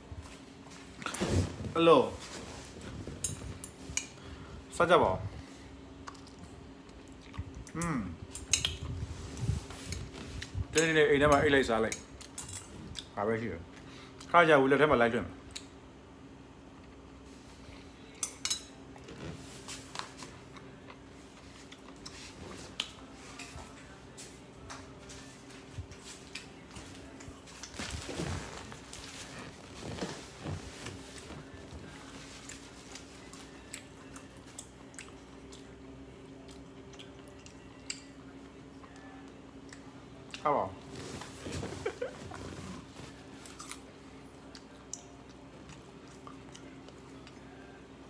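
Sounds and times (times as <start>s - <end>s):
person chewing: 32.4s - 35.8s, 36.4s - 38.1s, 43.4s - 47.5s.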